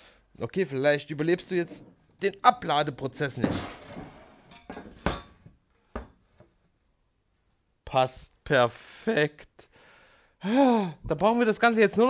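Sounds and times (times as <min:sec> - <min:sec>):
wooden shelf knocks and thunks: 0:03.4 - 0:04.2.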